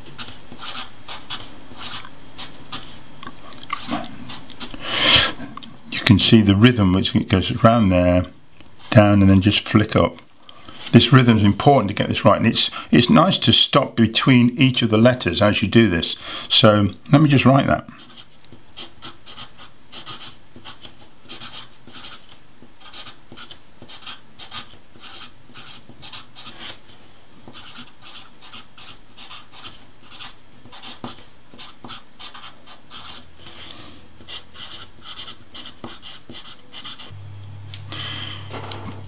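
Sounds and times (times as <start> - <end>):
pencil scratching on paper: 0.2 - 2.9, 18.0 - 22.2, 22.8 - 26.6, 27.5 - 33.2, 34.2 - 37.1.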